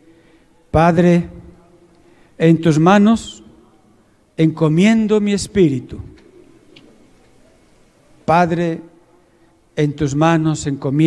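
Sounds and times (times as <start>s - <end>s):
faint background hum: 0.0s - 11.0s
man's amplified speech: 0.7s - 6.2s, 8.2s - 9.1s, 9.8s - 11.0s.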